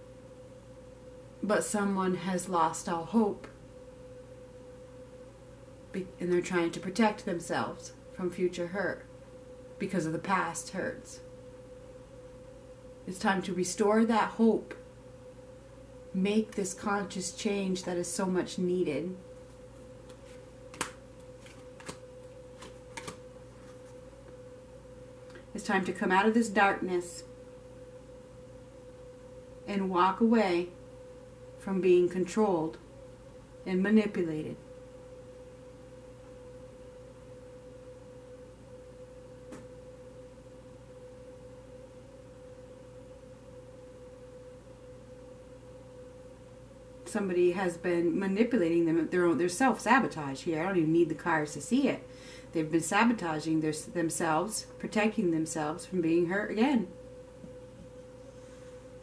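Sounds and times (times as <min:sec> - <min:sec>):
faint steady hum: 0:00.0 - 0:59.0.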